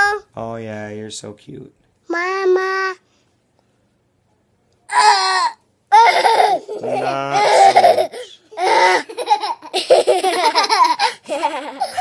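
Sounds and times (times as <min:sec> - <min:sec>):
young children laughing: 0:05.9 - 0:12.0.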